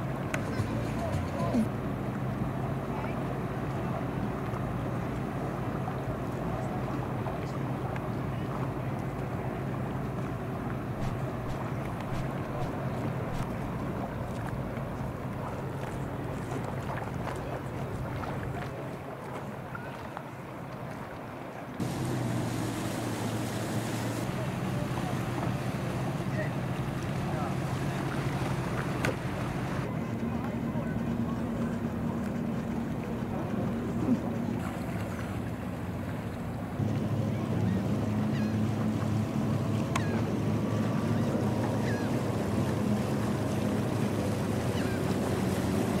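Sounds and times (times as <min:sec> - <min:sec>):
outboard motor hum: 0:00.0 - 0:46.0
water noise: 0:00.0 - 0:46.0
wind: 0:00.0 - 0:46.0.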